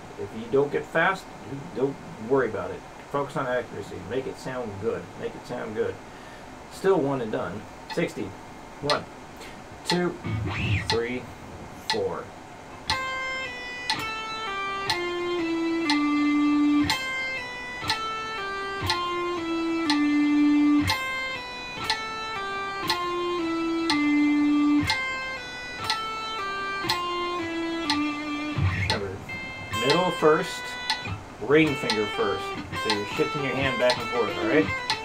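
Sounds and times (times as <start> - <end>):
electric guitar pull-offs: 9.9 - 11.2, 12.7 - 35.0.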